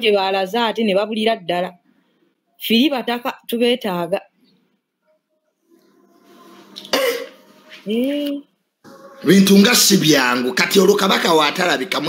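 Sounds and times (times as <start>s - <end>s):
man clearing his throat: 6.8s - 7.5s
man speaking: 8.9s - 12.0s.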